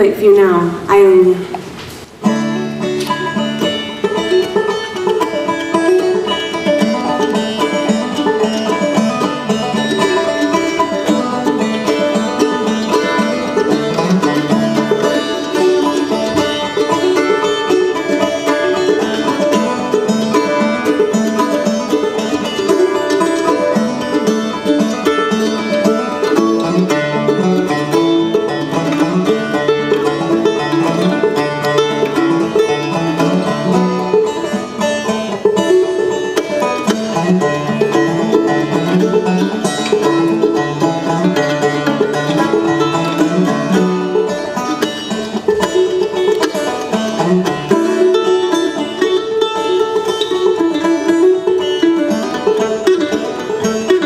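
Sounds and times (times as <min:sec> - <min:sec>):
banjo rolling: 0:00.0 - 0:54.0
strummed acoustic guitars: 0:00.0 - 0:54.0.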